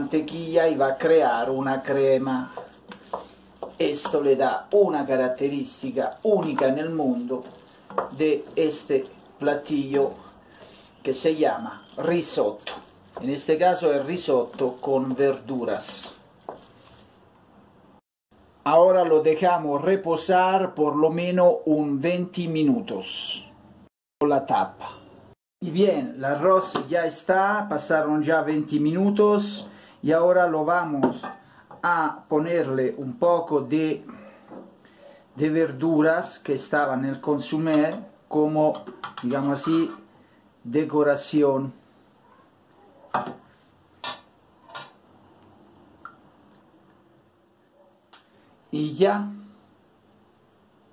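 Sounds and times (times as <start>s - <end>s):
wooden spoon tapping metal pot: 7.4s - 8.7s.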